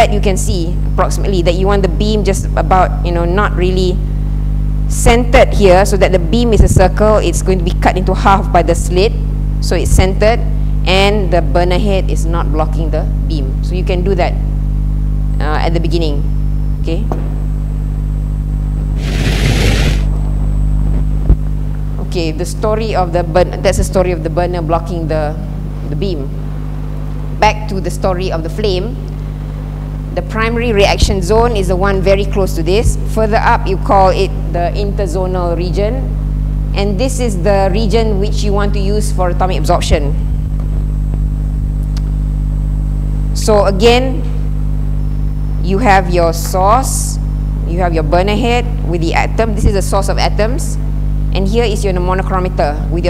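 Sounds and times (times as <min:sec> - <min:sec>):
low electrical hum: 0:00.0 - 0:53.0
rush of noise: 0:19.0 - 0:20.1.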